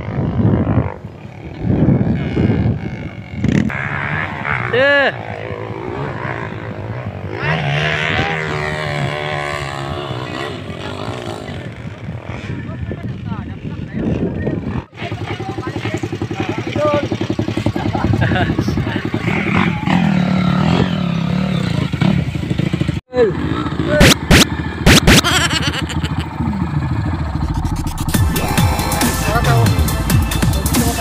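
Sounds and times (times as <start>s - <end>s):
motorcycle engine revving: 0.0s - 31.0s
people's voices: 28.2s - 31.0s.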